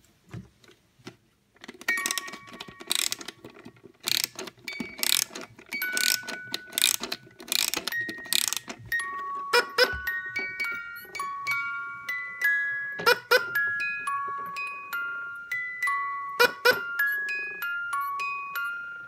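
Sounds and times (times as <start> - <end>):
toy winder ratcheting clicks: 1.6 - 8.8
music box notes: 1.8 - 19.0.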